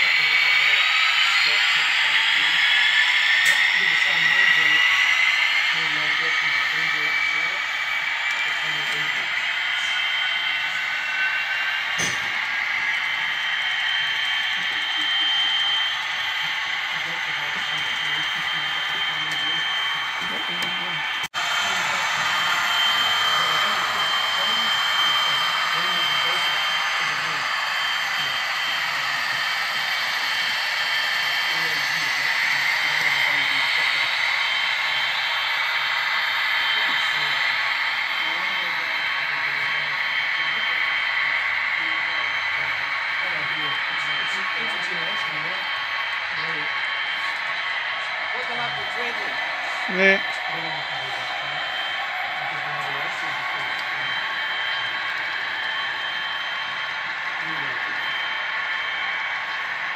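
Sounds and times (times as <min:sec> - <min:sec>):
indistinct voices: 0:00.0 - 0:59.9
model train wheels whirring: 0:00.0 - 0:59.9.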